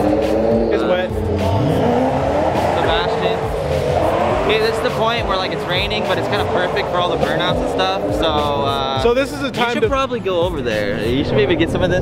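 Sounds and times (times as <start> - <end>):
car engine revving high: 0.0 - 9.8
voices: 0.0 - 12.0.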